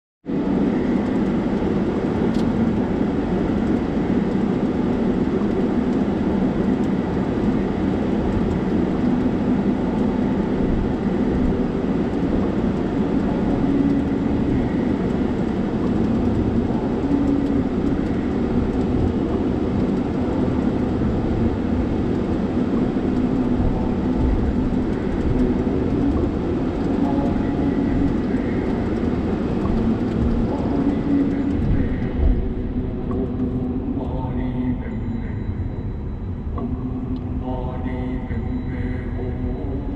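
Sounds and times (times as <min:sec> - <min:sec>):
car cabin road and engine rumble: 0:00.3 - 0:37.4.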